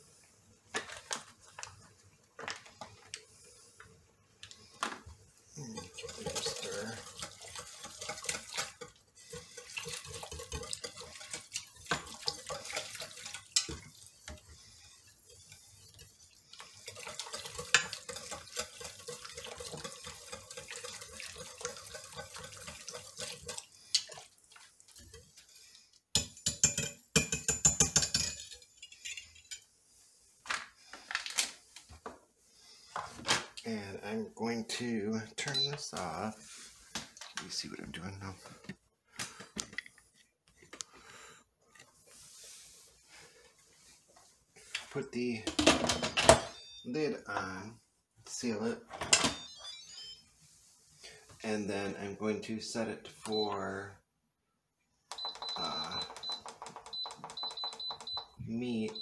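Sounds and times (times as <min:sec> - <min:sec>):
whisk swishing in sauce: 0:05.5 - 0:25.7.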